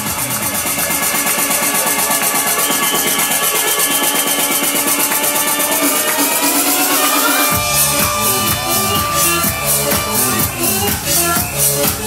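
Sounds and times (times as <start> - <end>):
electronic dance music: 0.0 - 12.0
rising synth sweep: 1.8 - 12.0.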